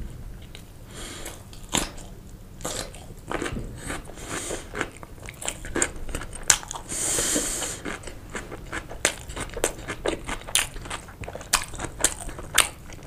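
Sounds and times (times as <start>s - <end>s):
crunching and chewing gherkin: 0.4s - 13.0s
biting into sausage: 1.2s - 13.0s.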